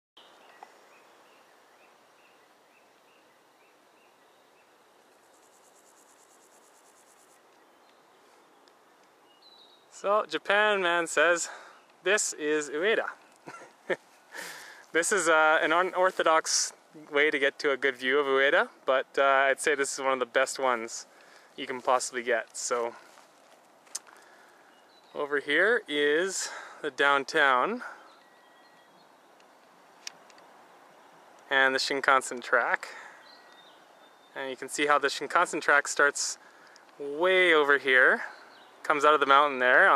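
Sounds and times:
insect chirping: 0:00.2 - 0:10.0
high fast insect trill: 0:05.0 - 0:07.5.

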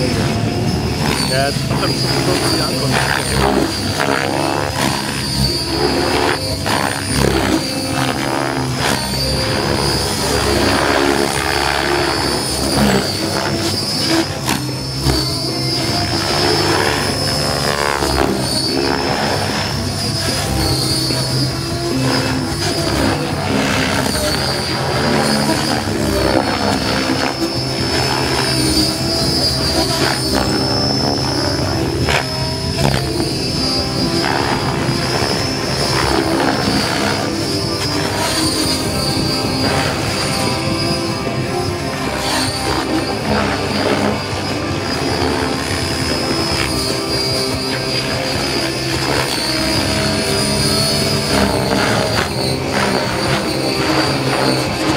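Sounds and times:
helicopter rotor blades swishing: 0:00.0 - 0:54.9
steady high whine: 0:00.0 - 0:54.9.

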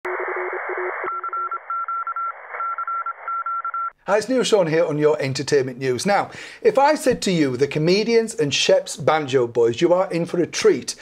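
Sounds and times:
radio static: 0:00.0 - 0:03.4
low morse code beeps: 0:01.0 - 0:03.9
high morse code beeps: 0:01.1 - 0:03.9.

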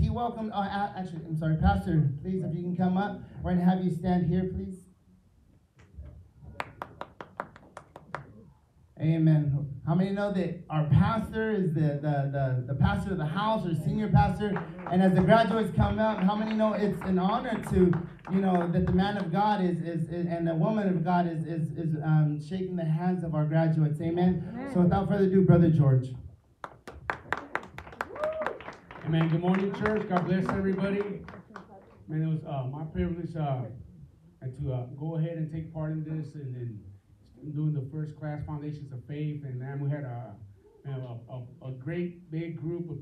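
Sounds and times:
hands clapping: 0:06.6 - 0:08.4, 0:14.3 - 0:19.4, 0:26.6 - 0:32.0.

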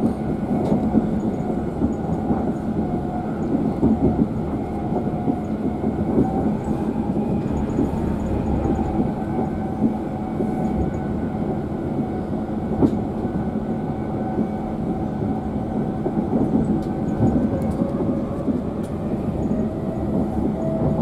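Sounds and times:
train wheels rumbling on track: 0:00.0 - 0:21.0.

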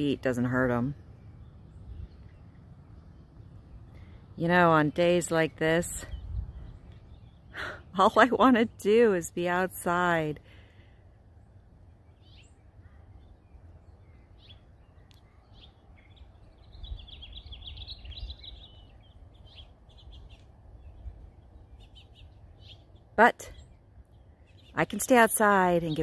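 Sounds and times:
low steady rumble: 0:00.0 - 0:26.0
small birds chirping: 0:00.0 - 0:26.0.

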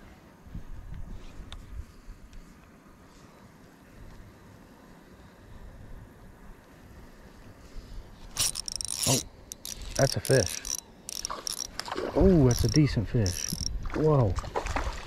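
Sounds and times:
fishing reel rattling and clicking: 0:08.3 - 0:13.8.

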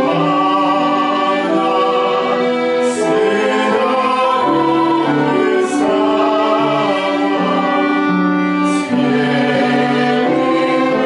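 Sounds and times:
classical singing of a carol: 0:00.0 - 0:11.0
piano: 0:00.0 - 0:11.0
violin: 0:00.0 - 0:11.0.

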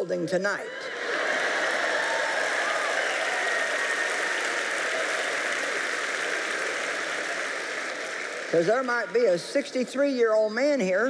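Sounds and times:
audience laughing: 0:00.9 - 0:02.4
audience applauding: 0:00.9 - 0:09.4.

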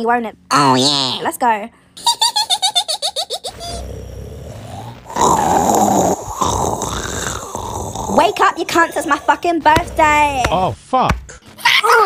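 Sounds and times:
person laughing: 0:02.0 - 0:03.8
rasping growl-like grunt: 0:03.6 - 0:10.7.

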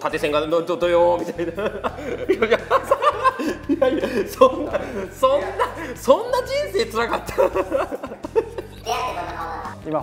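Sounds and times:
man laughing heartily: 0:01.3 - 0:08.8.

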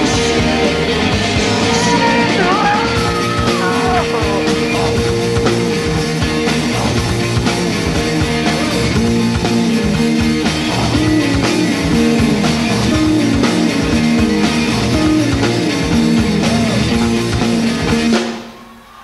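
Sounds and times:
live rock band playing: 0:00.0 - 0:18.5.

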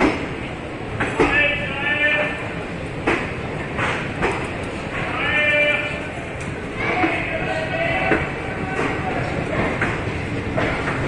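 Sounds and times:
train wheels clacking over rail joints: 0:00.0 - 0:01.6, 0:02.2 - 0:11.0
train running rumble: 0:00.0 - 0:11.0.

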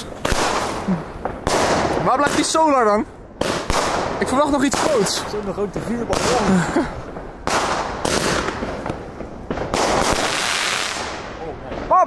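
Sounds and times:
firework bangs: 0:00.0 - 0:12.0
firework crackling: 0:00.0 - 0:12.0.

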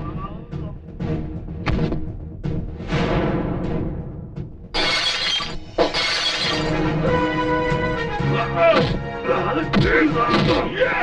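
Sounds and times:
dramatic background music: 0:00.0 - 0:11.0
glass breaking with ringing shatter: 0:04.8 - 0:06.7.

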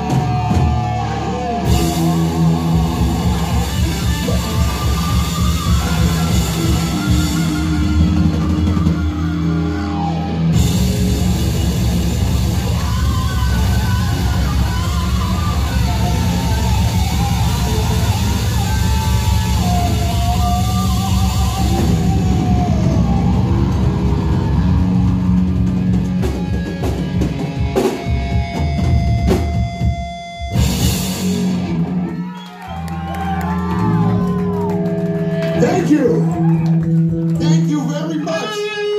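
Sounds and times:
distorted electric guitar: 0:00.0 - 0:32.2
drum kit: 0:00.0 - 0:37.7
bass guitar: 0:00.0 - 0:38.9.

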